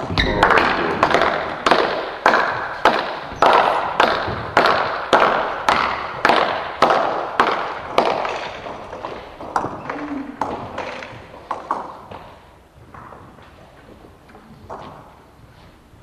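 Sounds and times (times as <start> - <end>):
sharp echoing knocks: 0.0 - 9.8.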